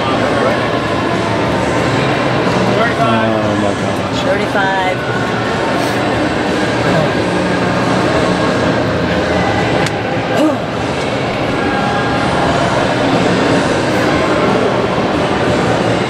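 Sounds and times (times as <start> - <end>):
faint voices: 0.0 - 16.0
loud steady rumbling: 0.0 - 16.0.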